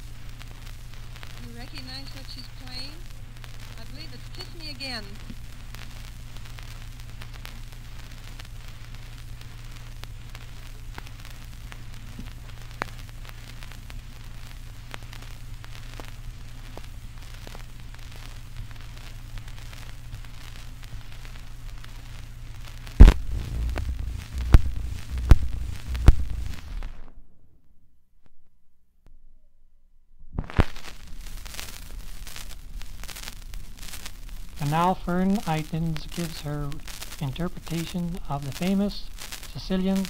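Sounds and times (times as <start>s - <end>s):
record clicks and crackle: 0.0s - 27.2s, 30.3s - 40.0s
record hum and hiss: 0.0s - 27.2s, 30.2s - 40.0s
loud thumps: 23.0s - 27.1s.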